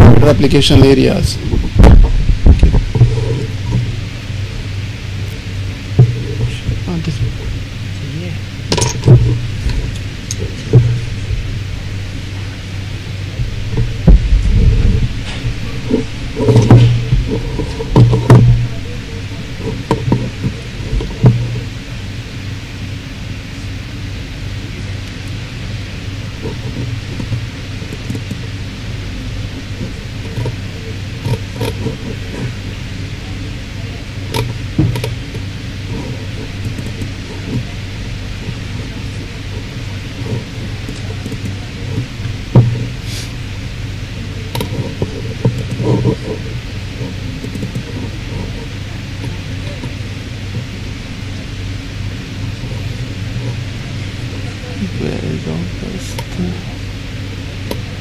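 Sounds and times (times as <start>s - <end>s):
electrical hum with hiss: 0.0s - 58.0s
dull thumps: 1.5s - 4.0s, 13.4s - 21.6s, 34.4s - 43.0s
loud knocks: 1.5s - 4.0s, 13.4s - 18.9s.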